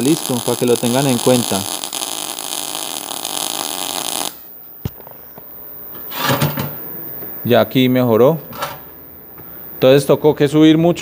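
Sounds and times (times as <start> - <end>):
welding arc hissing: 0.0 - 4.6.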